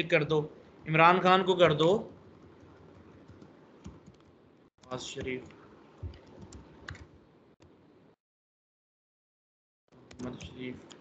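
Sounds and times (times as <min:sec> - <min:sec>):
computer keyboard keystrokes: 0:03.3 - 0:07.1, 0:10.0 - 0:11.0.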